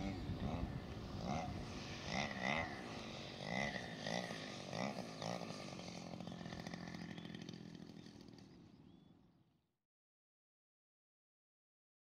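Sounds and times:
model plane engine droning: 0.0 - 9.3.

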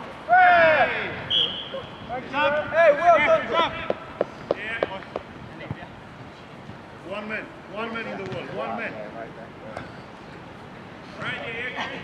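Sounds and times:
footballers shouting: 0.2 - 4.2.

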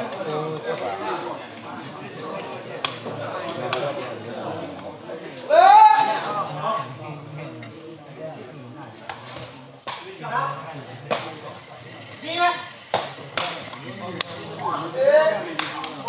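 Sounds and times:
people calling out: 5.4 - 6.4.

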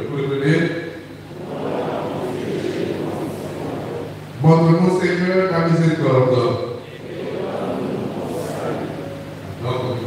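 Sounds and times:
congregation speaking together: 0.0 - 10.0.

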